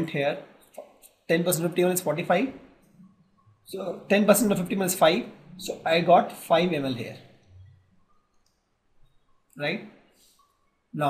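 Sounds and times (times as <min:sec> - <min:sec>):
person speaking: 0:00.0 - 0:02.6, 0:03.7 - 0:07.3.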